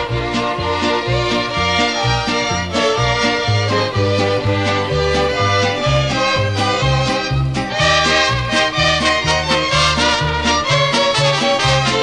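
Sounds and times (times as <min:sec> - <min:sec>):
mariachi band music: 0:00.0 - 0:12.0.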